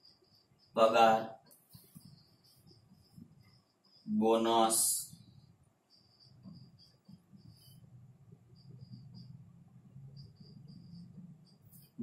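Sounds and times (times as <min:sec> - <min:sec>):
faint cricket chirping: 0:00.0 - 0:12.0.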